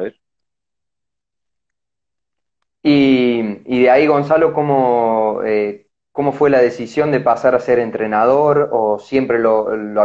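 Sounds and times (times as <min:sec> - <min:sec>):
man speaking: 0:02.8 - 0:10.0.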